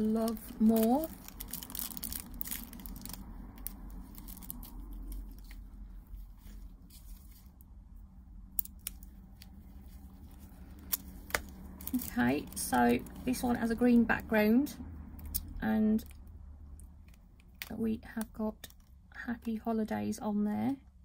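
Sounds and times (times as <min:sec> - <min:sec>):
plastic foil crinkling: 0:00.0 - 0:07.6, 0:08.6 - 0:13.8
low steady hum: 0:00.0 - 0:21.0.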